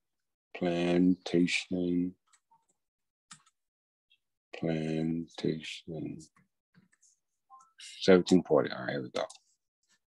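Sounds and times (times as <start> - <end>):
keyboard and mouse clicks: 2.3 - 3.6.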